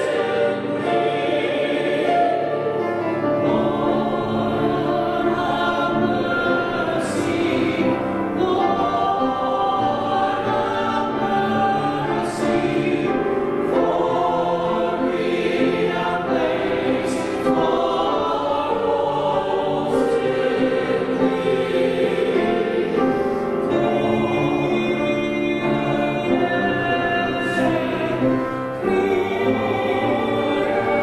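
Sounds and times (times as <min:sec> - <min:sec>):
church choir singing: 0:00.0 - 0:31.0.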